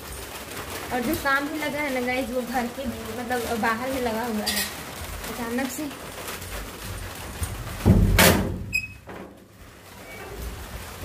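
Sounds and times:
metal door clattering: 0:07.8 - 0:09.4.

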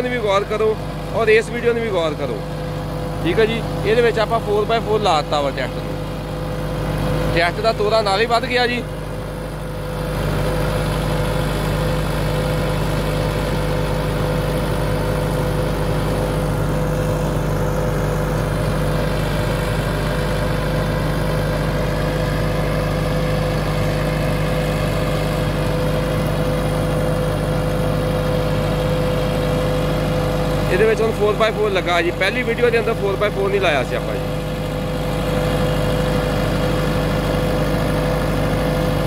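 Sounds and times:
tractor diesel engine under load: 0:00.0 - 0:39.0.

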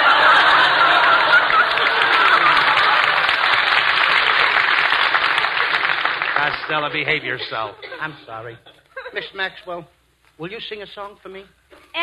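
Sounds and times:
studio audience laughing: 0:00.0 - 0:09.5.

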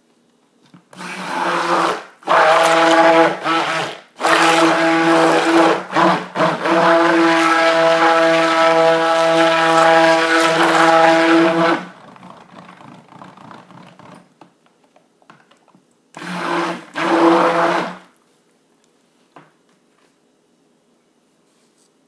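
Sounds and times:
stick blender motor hum: 0:00.9 - 0:14.2, 0:16.2 - 0:18.1.

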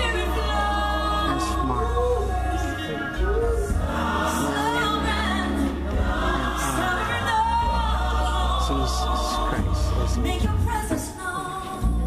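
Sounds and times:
steady low bass: 0:00.0 - 0:10.9
voices singing gospel music: 0:00.0 - 0:12.0.

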